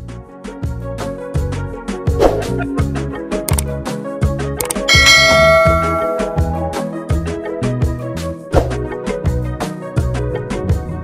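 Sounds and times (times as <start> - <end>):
background music with beat: 0.1 - 11.0
bright bell chime: 4.9 - 7.0.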